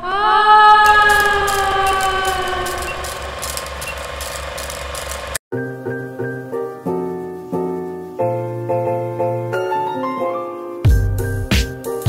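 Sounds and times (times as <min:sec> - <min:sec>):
film projector clatter: 0:01.1 - 0:05.4
piano music: 0:05.5 - 0:12.0.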